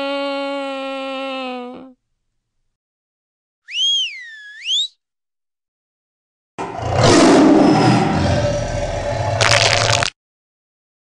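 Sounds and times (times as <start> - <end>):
swooping whistle: 3.6 - 5.0
tiger roar: 6.6 - 10.0.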